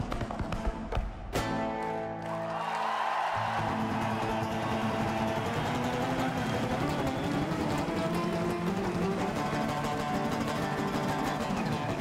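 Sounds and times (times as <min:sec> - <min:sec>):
acoustic guitar duet: 0:03.4 - 0:12.0.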